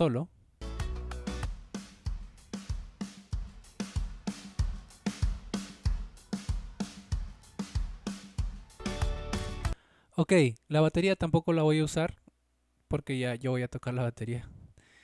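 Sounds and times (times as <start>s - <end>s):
drum kit beat: 0.6s - 9.8s.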